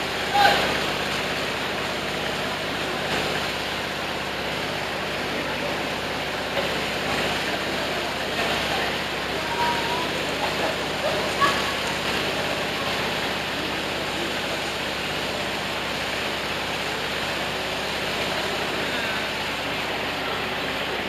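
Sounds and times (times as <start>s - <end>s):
faint voices of bathers: 0.0s - 21.0s
flowing water rushing: 0.0s - 21.0s.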